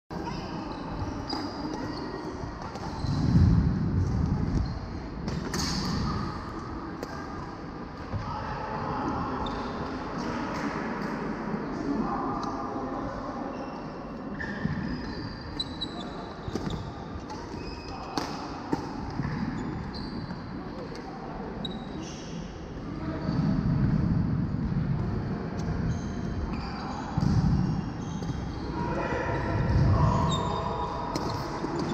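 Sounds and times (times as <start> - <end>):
murmur of voices: 15.8 - 31.9.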